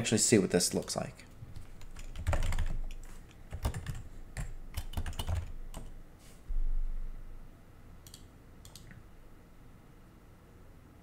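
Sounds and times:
keyboard typing: 0:01.6 - 0:06.0, 0:08.0 - 0:09.0
short low rumble: 0:06.5 - 0:07.5.

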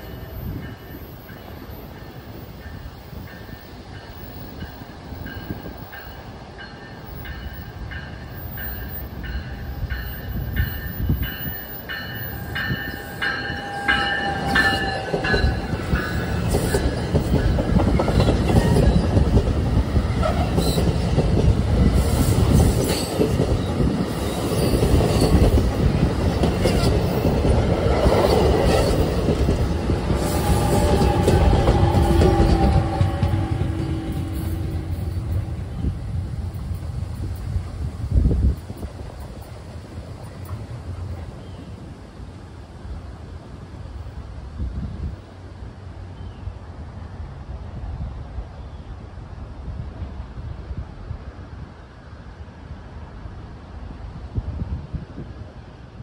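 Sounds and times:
train passing: 0:00.0 - 0:56.0
high ringing: 0:05.3 - 0:17.6.

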